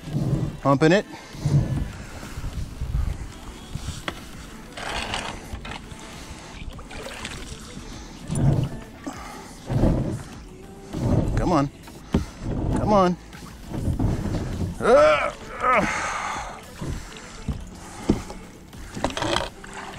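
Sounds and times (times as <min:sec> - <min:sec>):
water lapping at hull: 0:00.0 - 0:19.9
paddle strokes splashing: 0:01.2 - 0:14.8, 0:15.9 - 0:19.9.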